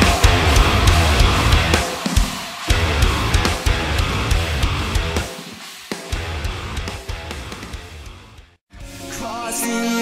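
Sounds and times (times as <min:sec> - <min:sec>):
heavy metal with distorted guitars: 0:00.0 - 0:09.6.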